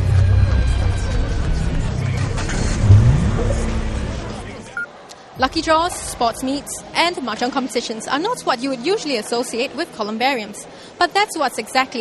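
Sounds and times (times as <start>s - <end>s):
low rising whoosh: 0.7s - 4.7s
news theme music: 2.6s - 6.1s.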